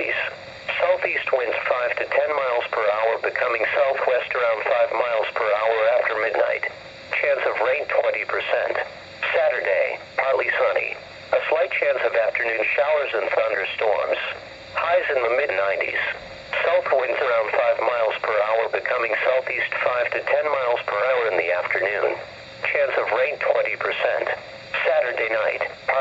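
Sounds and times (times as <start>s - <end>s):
announcer voice over radio speaker: 0.0s - 26.0s.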